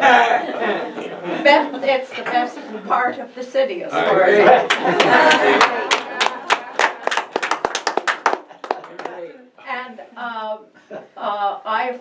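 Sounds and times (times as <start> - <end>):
people clapping: 4.5 - 9.4.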